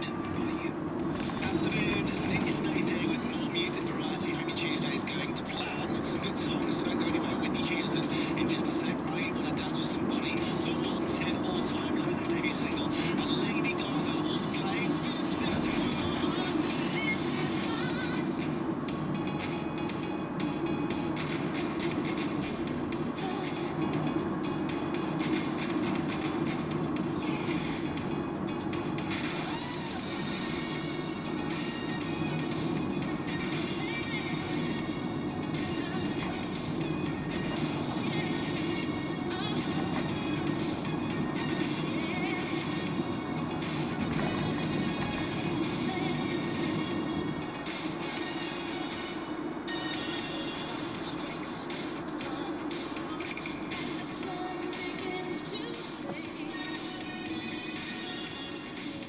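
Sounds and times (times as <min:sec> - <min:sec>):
car radio music and talk: 0:00.0 - 0:59.0
road and engine hum: 0:00.0 - 0:59.0.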